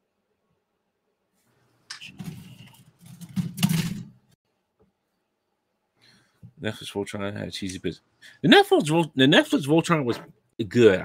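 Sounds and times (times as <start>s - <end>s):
plastic parts rattling and scraping: 2.0s - 4.4s.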